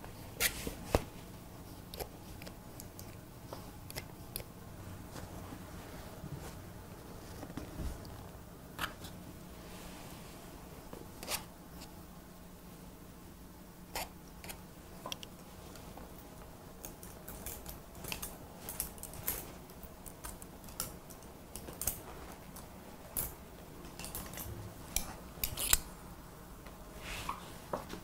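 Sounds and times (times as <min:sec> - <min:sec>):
faint low hum: 0:00.0 - 0:28.0
scissors snipping hair: 0:16.8 - 0:25.9.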